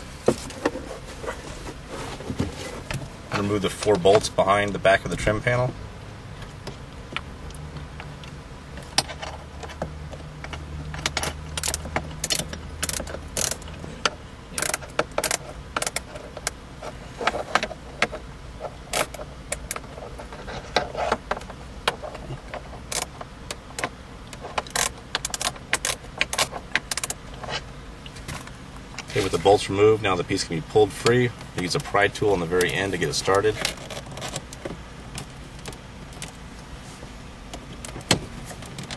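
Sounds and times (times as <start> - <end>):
metallic clicks of tool and bolts: 10.9 - 16.6.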